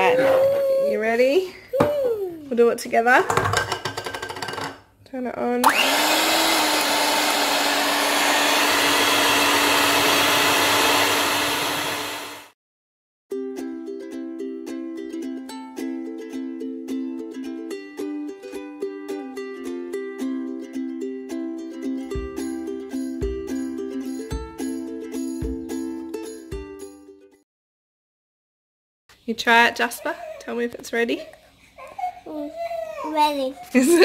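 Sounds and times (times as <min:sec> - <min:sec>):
electric hand mixer running: 0:05.6 - 0:12.6
music with plucked notes: 0:13.3 - 0:27.4.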